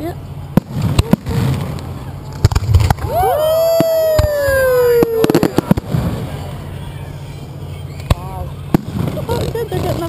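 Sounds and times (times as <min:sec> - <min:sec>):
fireworks reports: 0:00.0 - 0:10.0
steady low rumble: 0:00.0 - 0:10.0.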